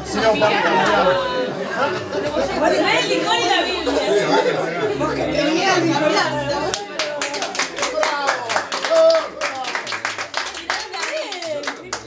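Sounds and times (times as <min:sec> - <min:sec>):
group clapping in rhythm: 0:06.7 - 0:12.0.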